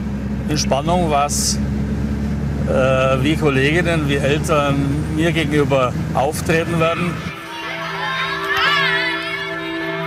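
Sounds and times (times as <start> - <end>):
children shouting: 6.7 - 10.0
child shrieking: 6.9 - 9.7.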